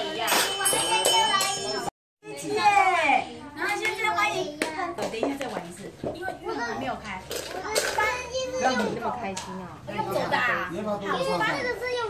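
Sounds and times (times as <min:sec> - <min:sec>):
children's voices: 0:00.0 - 0:05.2, 0:06.3 - 0:09.1, 0:09.9 - 0:12.0.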